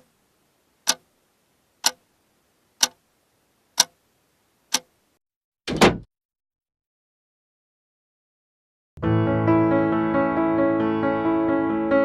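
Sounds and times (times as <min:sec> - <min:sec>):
clock ticking: 0:00.8 - 0:01.1, 0:01.8 - 0:02.0, 0:02.8 - 0:03.0, 0:03.8 - 0:04.0, 0:04.7 - 0:04.9
loud knock: 0:05.7 - 0:06.1.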